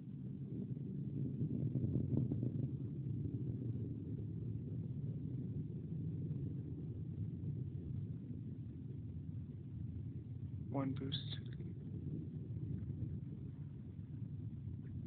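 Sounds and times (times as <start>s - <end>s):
distant rocket motor rumble: 0.0s - 15.0s.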